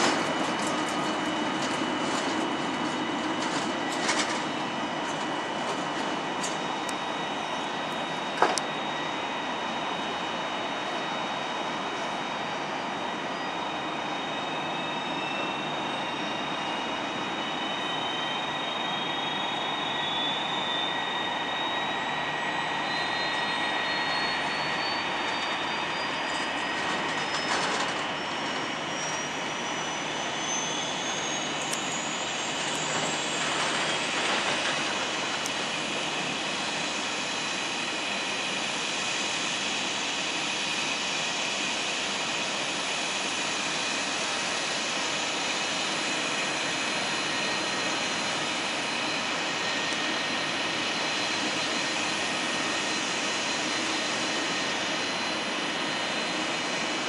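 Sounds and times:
high whine rising in pitch: 0:00.0 - 0:57.0
jet engines idling: 0:00.0 - 0:57.0.

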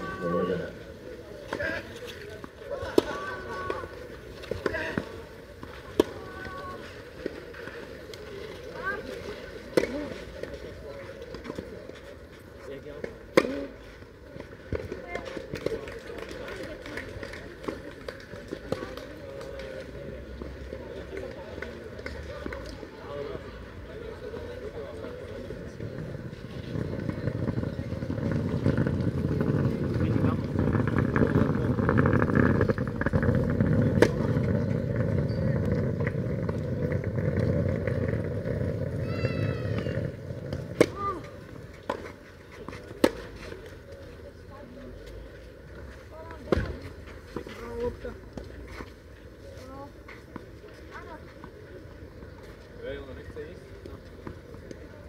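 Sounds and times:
people talking: 0:00.0 - 0:38.0
tennis ball strikes: 0:09.7 - 0:10.5, 0:13.3 - 0:13.7.

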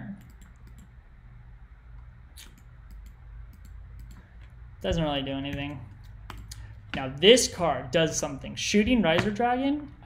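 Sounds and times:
low steady hum: 0:00.0 - 0:10.0
computer mouse clicks: 0:00.2 - 0:01.0, 0:02.0 - 0:04.6, 0:05.6 - 0:06.6.

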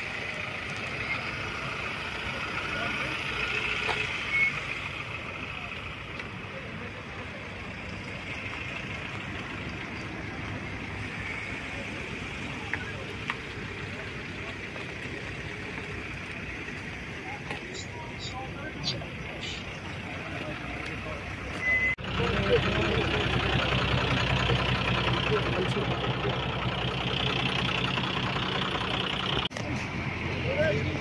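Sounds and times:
outdoor noise: 0:00.0 - 0:31.0
vehicle engine idling: 0:00.0 - 0:31.0
voices calling: 0:00.0 - 0:31.0.

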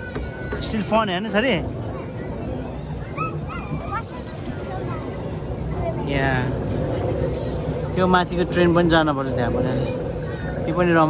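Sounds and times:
steady low hum: 0:00.0 - 0:11.0
child squealing: 0:03.0 - 0:04.1.

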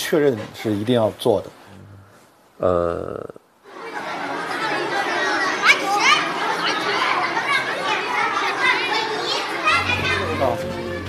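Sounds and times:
children chattering and calling out: 0:01.8 - 0:11.0.

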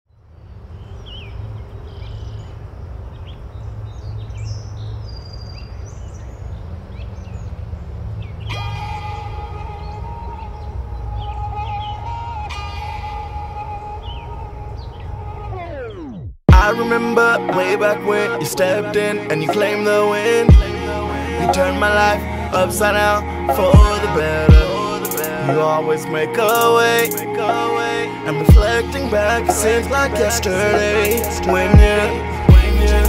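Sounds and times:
birds chirping: 0:00.1 - 0:33.0
held music chord sliding down: 0:08.5 - 0:33.0.

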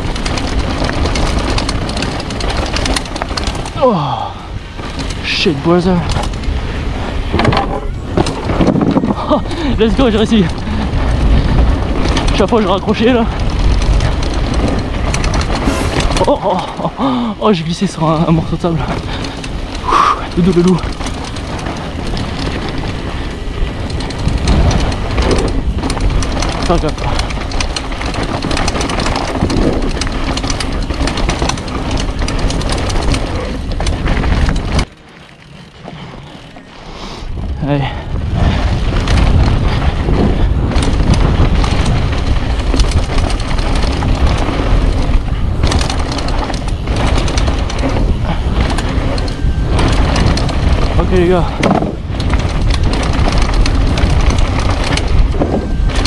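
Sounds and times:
bike rattling over bumps: 0:00.0 - 0:56.0
tyres on gravel: 0:00.0 - 0:56.0
wind noise on microphone: 0:00.0 - 0:56.0.

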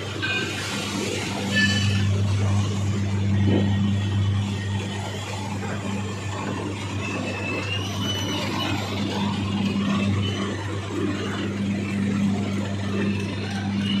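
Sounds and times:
faint high whine: 0:00.0 - 0:14.0
machinery and tractor engines humming: 0:00.0 - 0:14.0.

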